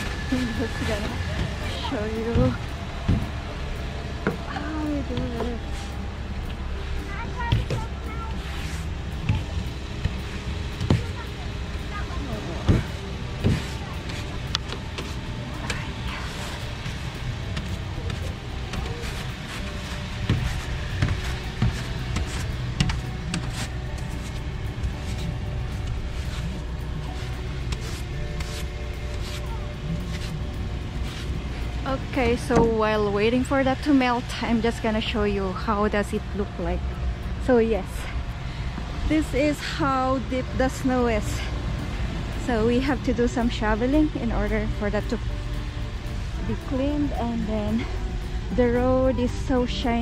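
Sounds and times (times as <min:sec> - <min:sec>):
scraping snow off windshield: 0:00.0 - 0:03.4, 0:07.4 - 0:09.6, 0:11.9 - 0:33.6
background music: 0:00.0 - 0:50.0
steady low hum: 0:00.0 - 0:50.0.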